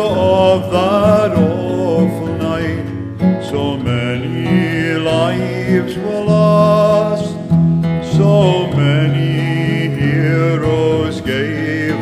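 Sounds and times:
person singing with vibrato: 0:00.0 - 0:12.0
strummed acoustic guitars: 0:00.0 - 0:12.0.

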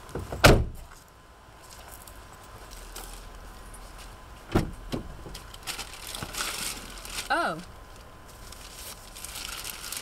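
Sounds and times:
car door slamming: 0:00.2 - 0:00.8, 0:04.5 - 0:05.2.

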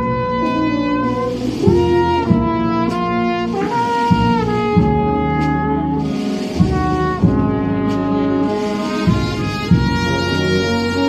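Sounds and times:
brass band playing a march: 0:00.0 - 0:11.0
low drum thump: 0:01.6 - 0:06.0, 0:06.6 - 0:08.1.

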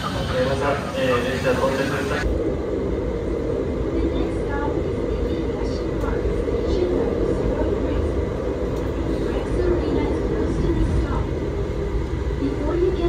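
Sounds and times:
tram running rumble: 0:00.0 - 0:13.0.

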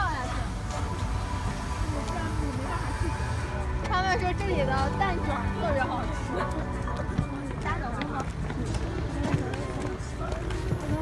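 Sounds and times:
footsteps in sandals: 0:00.0 - 0:11.0
people talking: 0:00.0 - 0:11.0.

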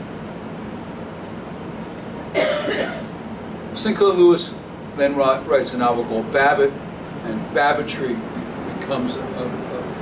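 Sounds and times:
room ventilation hum: 0:00.0 - 0:10.0
man coughing: 0:02.4 - 0:03.1.

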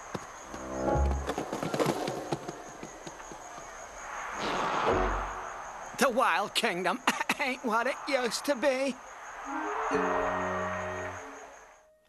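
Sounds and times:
music: 0:00.5 - 0:01.3, 0:09.5 - 0:12.0.

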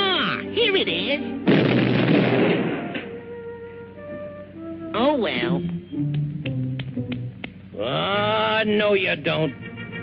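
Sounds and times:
orchestral music held notes: 0:00.0 - 0:10.0
cartoon explosion blast: 0:01.5 - 0:03.1.

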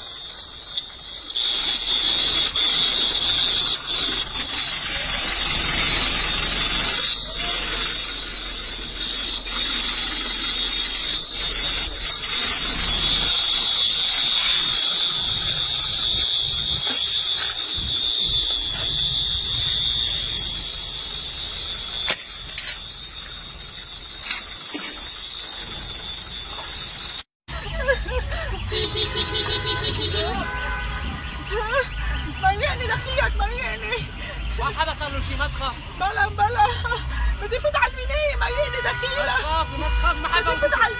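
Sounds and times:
high-pitched electronic alarm tone: 0:00.0 - 0:40.9.

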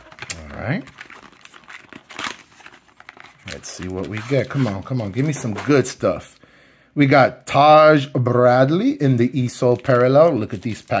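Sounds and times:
card pack wrapper crinkling: 0:00.0 - 0:06.0, 0:09.3 - 0:11.0.

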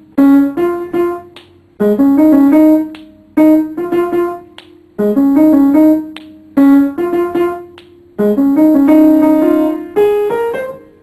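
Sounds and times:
upright piano notes: 0:00.0 - 0:11.0.

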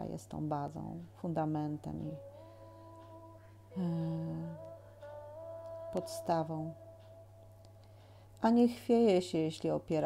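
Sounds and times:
low background hum: 0:00.0 - 0:10.0
woman humming: 0:02.0 - 0:07.4.

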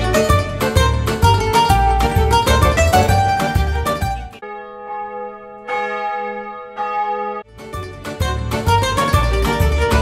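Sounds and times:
mandolin background music: 0:00.0 - 0:10.0
bell chimes ringing: 0:04.4 - 0:07.4.

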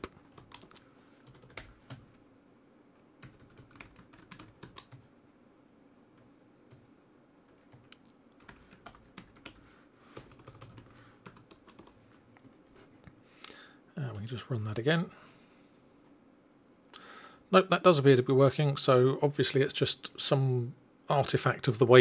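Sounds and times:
faint keyboard typing: 0:00.0 - 0:02.2, 0:02.9 - 0:05.1, 0:06.1 - 0:06.9, 0:07.5 - 0:12.8.

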